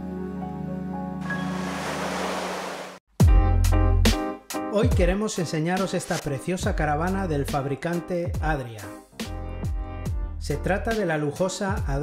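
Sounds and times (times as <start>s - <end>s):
surf rushing over rocks: 1.2s - 3.0s
soft background music: 3.7s - 12.0s.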